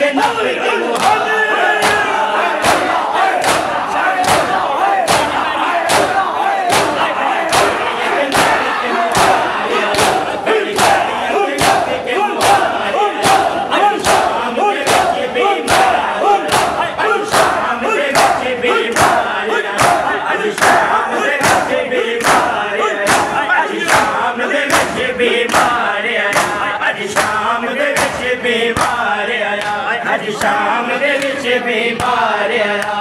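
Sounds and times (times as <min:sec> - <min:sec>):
men chanting and shouting: 0:00.0 - 0:33.0
palms slapping bare chests: 0:00.9 - 0:27.4, 0:28.0 - 0:29.0.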